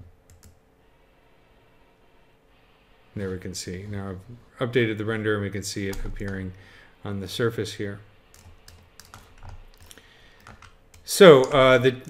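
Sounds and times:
computer keyboard and mouse clicks: 0.3s - 0.6s, 8.3s - 11.6s.

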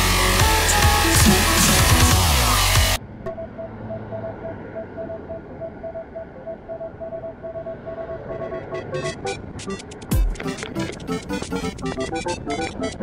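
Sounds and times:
music: 0.0s - 3.0s, 8.4s - 13.0s
wind and road noise: 2.9s - 13.0s
faint repeating tone: 3.0s - 9.8s.

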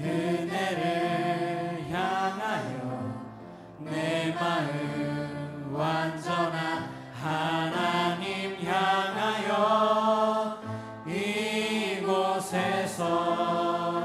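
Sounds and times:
choir singing worship song: 0.0s - 14.0s.

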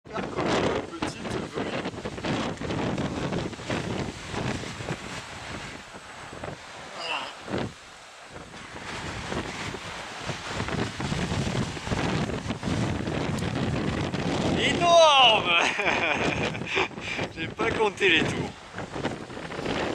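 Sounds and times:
wind buffeting microphone: 0.0s - 19.9s.

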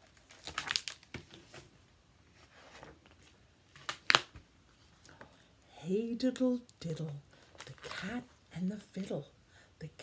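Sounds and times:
book pages turning: 0.0s - 5.3s.

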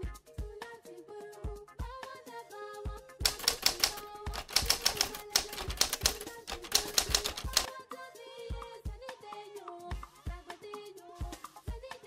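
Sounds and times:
typewriter key clatter: 3.2s - 7.7s.

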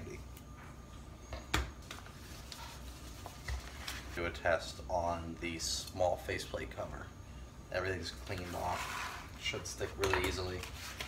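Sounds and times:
vinyl film rustling: 1.8s - 4.4s, 8.2s - 11.0s.

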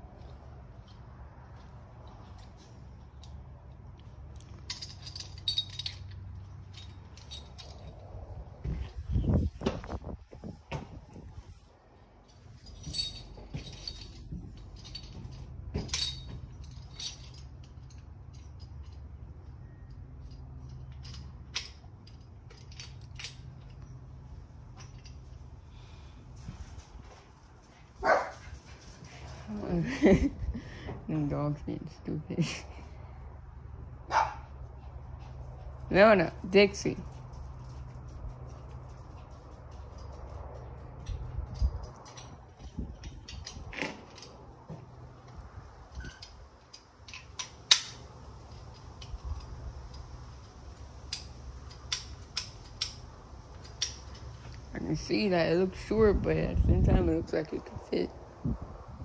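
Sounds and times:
dog barking: 28.0s - 28.4s, 34.1s - 34.5s.

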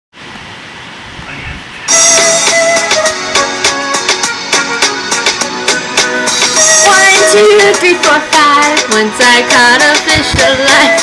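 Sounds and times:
recording hiss: 0.2s - 11.0s
music with plucked notes: 1.9s - 11.0s.

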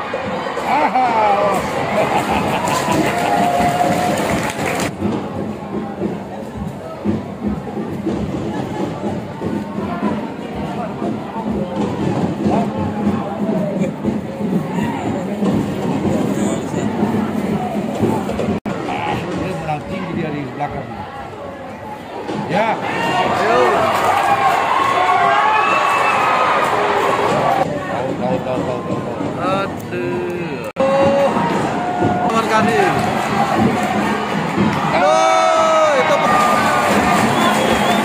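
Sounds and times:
stadium crowd shouting and cheering: 0.0s - 38.0s.

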